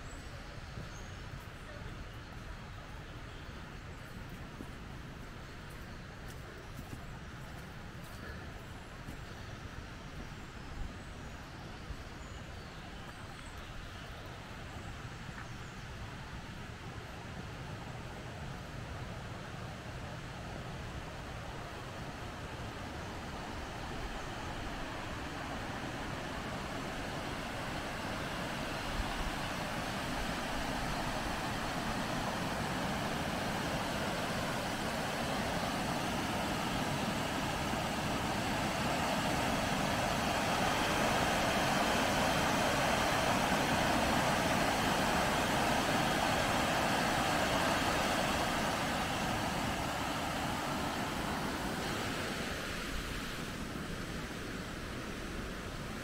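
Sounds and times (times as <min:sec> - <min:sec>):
river water pouring over weir: 0:18.9 - 0:56.0.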